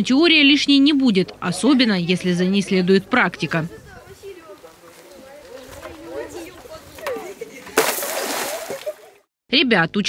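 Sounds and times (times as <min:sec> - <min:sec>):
lifebuoy splashing into water: 0:07.7 - 0:09.2.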